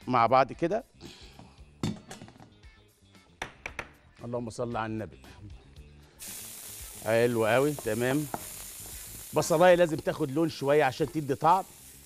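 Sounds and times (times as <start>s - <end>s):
onion sizzling in frying pan: 6.2s - 12.0s.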